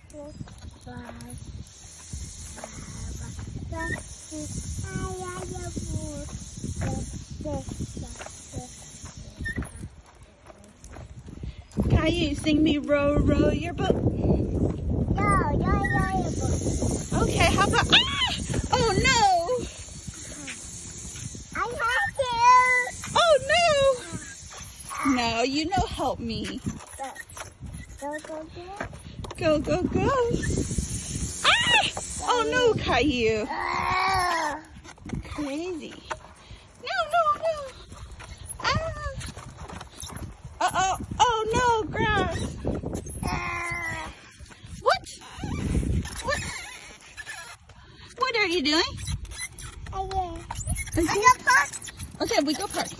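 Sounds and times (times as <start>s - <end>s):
tricycle rolling on concrete: 0.0s - 52.9s
walking footsteps: 8.1s - 12.9s
young child crying out: 43.2s - 44.2s.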